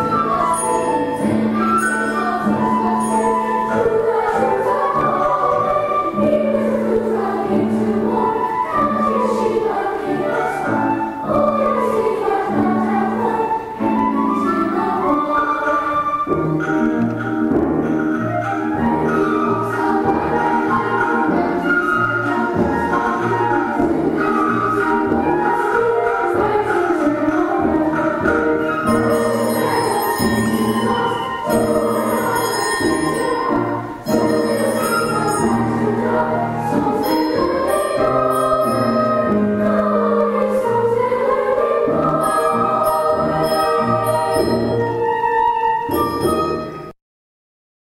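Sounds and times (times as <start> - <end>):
children's choir singing: 0.0 - 46.9
grand piano accompaniment: 0.0 - 46.9.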